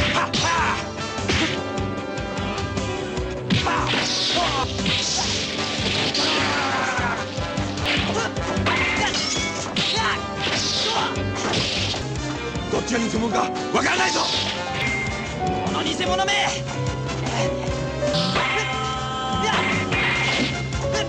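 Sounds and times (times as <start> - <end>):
punches and blows landing: 0.0 - 1.7, 3.4 - 12.1
background music: 0.0 - 21.0.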